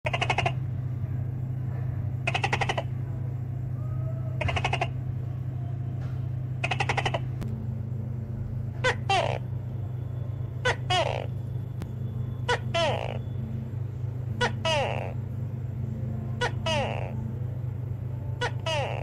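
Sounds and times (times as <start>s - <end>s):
gecko croaking: 0.0s - 0.6s, 2.3s - 2.9s, 4.4s - 4.9s, 6.6s - 7.3s, 8.8s - 9.5s, 10.6s - 11.4s, 12.5s - 13.3s, 14.4s - 15.2s, 16.4s - 17.2s
steady low hum: 0.0s - 19.0s.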